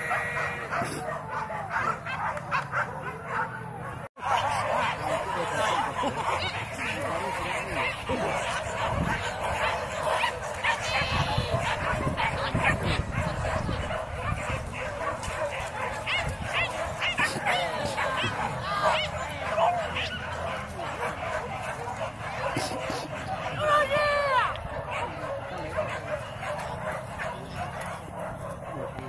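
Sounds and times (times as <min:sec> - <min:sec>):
dogs yipping and barking: 0:00.0 - 0:29.0.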